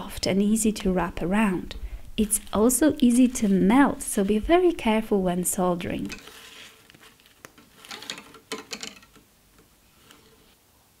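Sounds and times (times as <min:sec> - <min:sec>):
wire scraping on metal: 0:06.1 - 0:09.2, 0:09.8 - 0:10.6.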